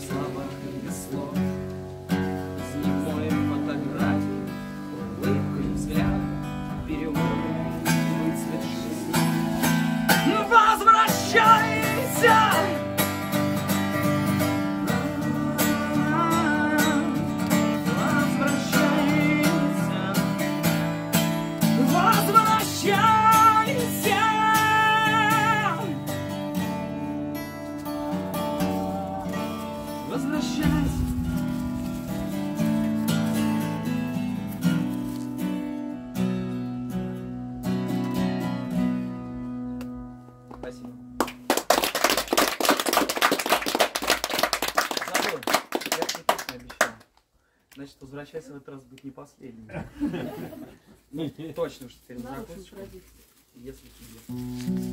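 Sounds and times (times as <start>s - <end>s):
acoustic guitar strumming: 0.0s - 41.2s, 54.4s - 54.9s
person singing long wavering notes: 27.8s - 31.6s.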